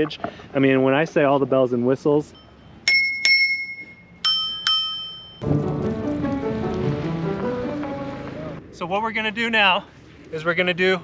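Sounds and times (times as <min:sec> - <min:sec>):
scooter bell dinging: 0:02.4 - 0:05.4
background music: 0:05.4 - 0:08.6.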